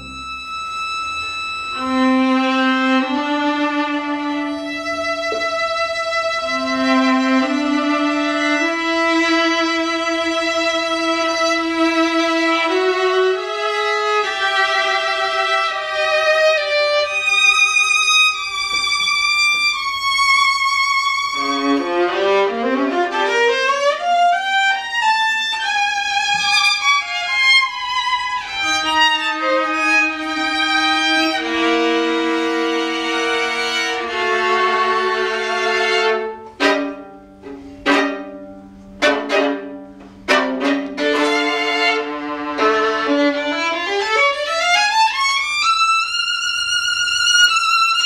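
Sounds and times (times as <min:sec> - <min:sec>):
violin and viola duet: 0:00.0 - 0:48.0.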